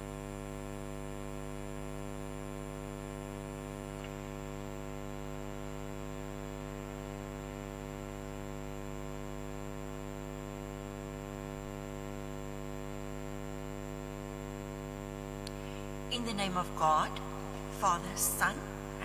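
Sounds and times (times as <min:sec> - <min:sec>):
electrical mains hum: 0:00.0 - 0:19.0.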